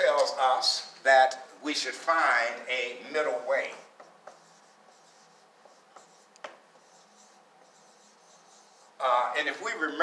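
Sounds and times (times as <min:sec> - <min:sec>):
marker writing on whiteboard: 0:02.5 - 0:09.0
marker tip tapping board: 0:03.6 - 0:06.6.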